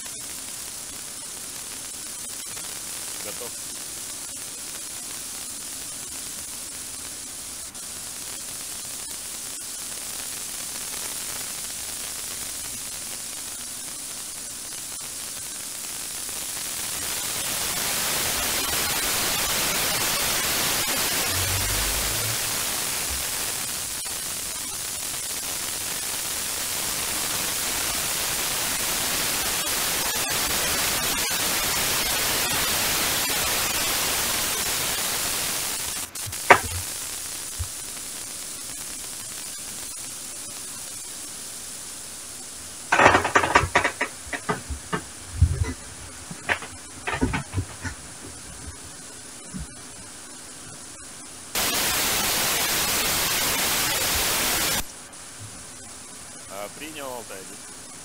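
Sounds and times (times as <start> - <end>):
radio static hiss: 0.0 - 58.0.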